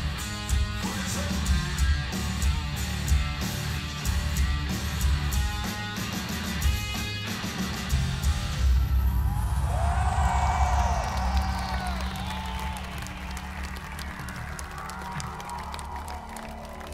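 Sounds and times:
crowd cheering and whooping: 0:08.7 - 0:16.9.

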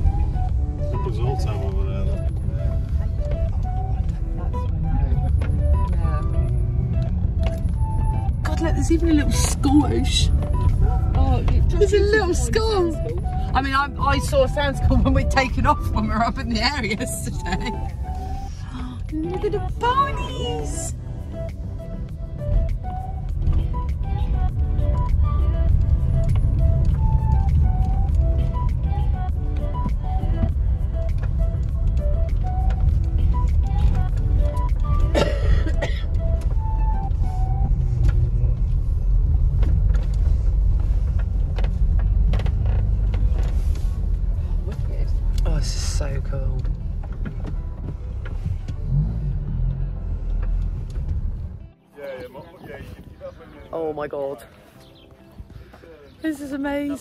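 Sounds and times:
road noise inside vehicle: 0:00.0 - 0:51.9
music playing: 0:00.0 - 0:57.0.

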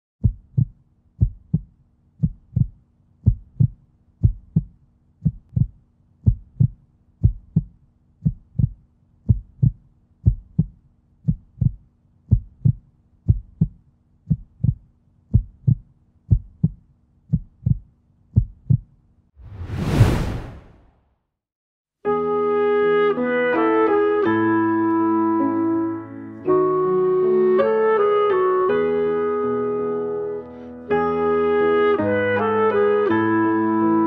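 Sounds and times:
heartbeat thumps: 0:00.2 - 0:18.9.

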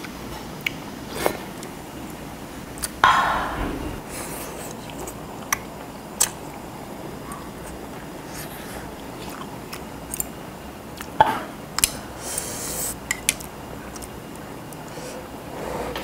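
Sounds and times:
chewing noodles: 0:07.3 - 0:11.2, 0:11.8 - 0:15.0.

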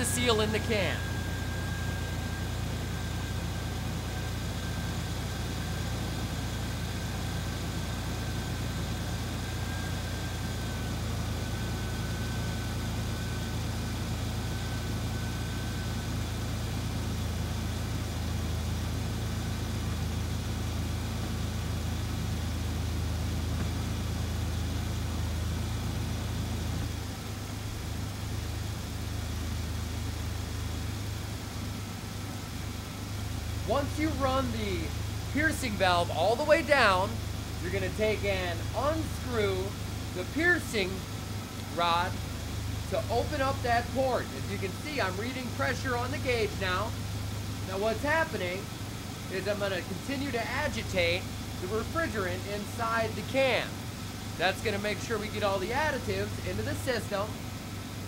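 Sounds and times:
car engine idling: 0:00.0 - 0:58.0
faint high whine: 0:00.0 - 0:58.0.

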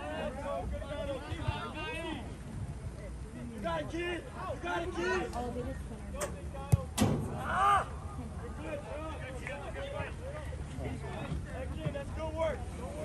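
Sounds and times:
players and spectators shouting: 0:07.3 - 0:10.2
loud yell: 0:07.4 - 0:08.0.

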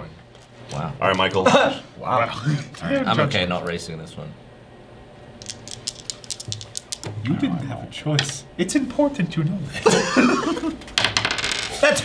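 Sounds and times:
plastic game pieces rattling: 0:05.4 - 0:07.1.

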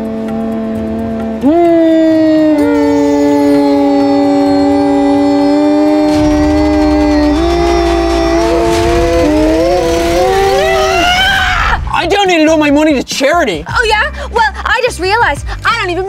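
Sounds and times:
voices chanting om: 0:00.2 - 0:10.8.

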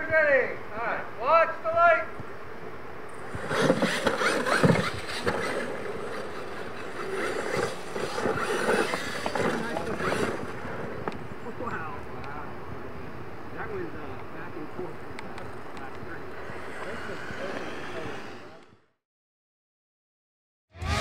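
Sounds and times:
tyres running over dirt: 0:03.1 - 0:12.4
electric motors whining: 0:03.1 - 0:12.5, 0:14.4 - 0:18.9.

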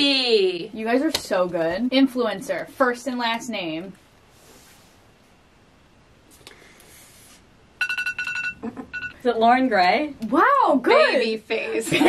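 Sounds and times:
short high electronic beeps: 0:07.8 - 0:09.2.

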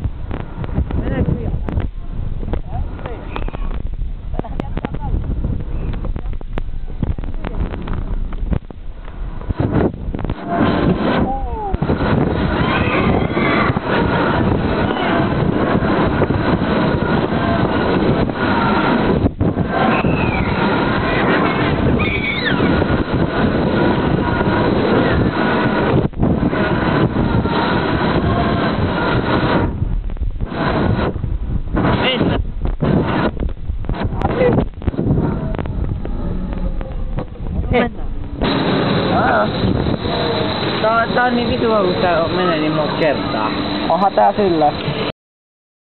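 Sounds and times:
camera rubbing noise: 0:00.0 - 0:22.0, 0:22.6 - 0:40.7
air rushing over microphone: 0:00.0 - 0:45.1
riders shouting and squealing: 0:12.5 - 0:14.0, 0:19.7 - 0:22.9.

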